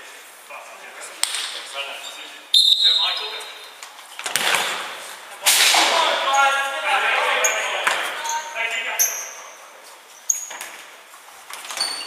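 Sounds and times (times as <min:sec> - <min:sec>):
shoe squeaks on wooden floor: 0:07.4 - 0:10.8, 0:11.6 - 0:12.0.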